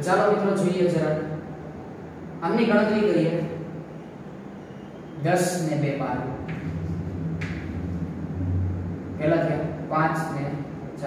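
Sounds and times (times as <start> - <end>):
low hum: 3.4 - 11.0.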